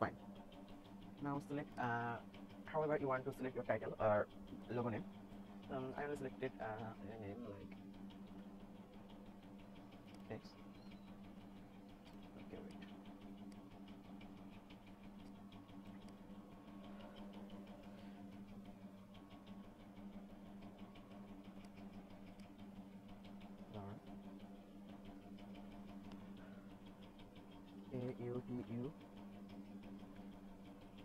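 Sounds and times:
electrical hum and buzz: 0:00.0 - 0:31.0
faint rapid ticking: 0:00.0 - 0:31.0.

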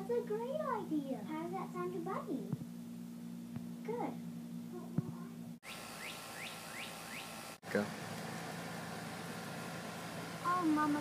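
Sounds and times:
bird chirping: 0:05.6 - 0:07.4.

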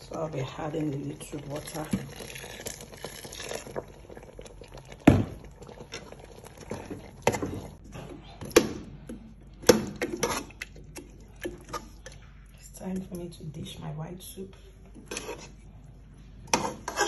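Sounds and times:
metal spoon stirring thick soup: 0:00.0 - 0:13.2, 0:14.8 - 0:17.0.

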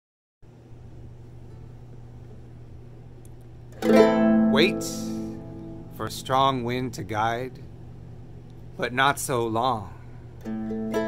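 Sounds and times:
low steady hum: 0:00.4 - 0:11.0
guitar chord strummed: 0:03.8 - 0:06.9, 0:10.4 - 0:11.0.

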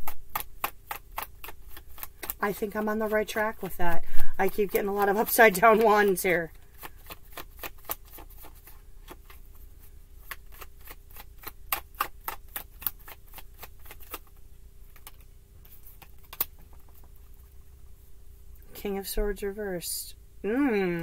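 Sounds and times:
cards being shuffled: 0:00.0 - 0:09.6, 0:10.2 - 0:17.3.

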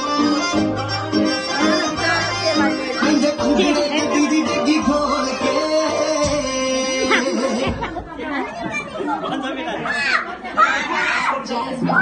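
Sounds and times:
loud pop dance music: 0:00.0 - 0:08.3.

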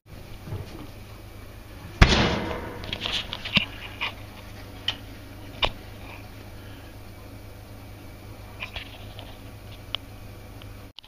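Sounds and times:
oven door banging shut: 0:01.9 - 0:03.5.

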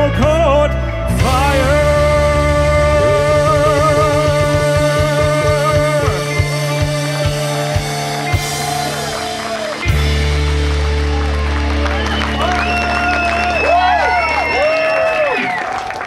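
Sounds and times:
deep bass note: 0:00.0 - 0:12.8
live folk rock band: 0:00.0 - 0:15.6
drum beats: 0:01.1 - 0:14.0.

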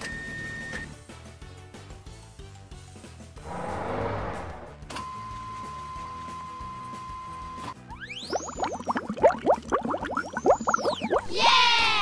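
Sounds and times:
rising cartoon bloops: 0:07.9 - 0:11.6.

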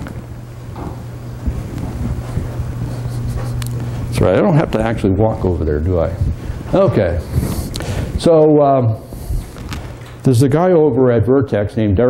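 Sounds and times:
soft low thumps: 0:00.0 - 0:08.3
low rumbling noise: 0:00.0 - 0:11.4
low electrical hum: 0:00.0 - 0:12.0.

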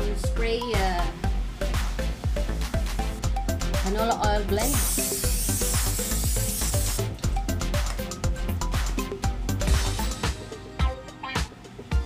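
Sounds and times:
background music with beat: 0:00.0 - 0:12.0
aerosol spray hissing: 0:04.6 - 0:07.2.

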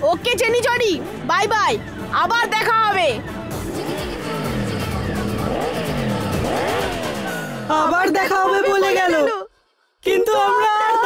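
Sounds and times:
background music: 0:00.0 - 0:11.0
cartoon motorcycle engine revving: 0:03.1 - 0:08.5.

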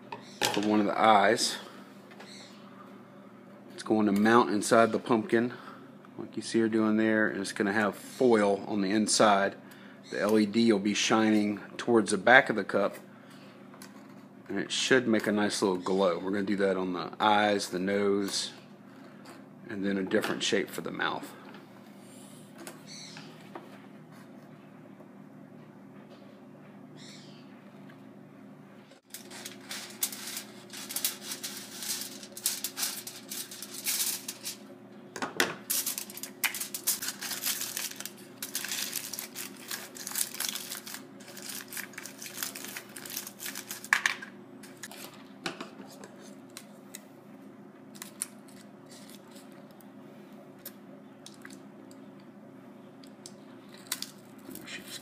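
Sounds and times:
aluminium foil crinkling: 0:29.1 - 0:34.6, 0:35.7 - 0:45.2, 0:48.0 - 0:49.6, 0:53.7 - 0:55.0.

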